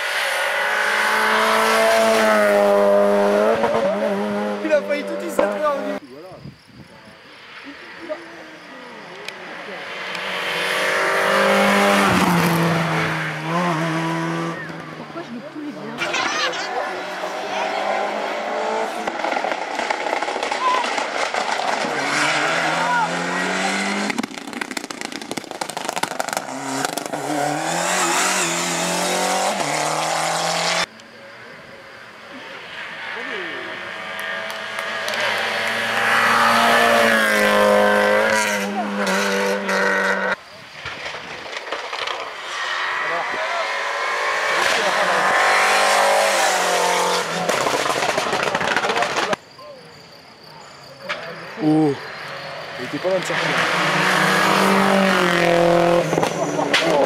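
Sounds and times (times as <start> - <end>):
rally cars revving past: 0.0 - 6.0, 9.4 - 30.9, 31.9 - 40.4, 41.9 - 49.4, 51.8 - 57.0.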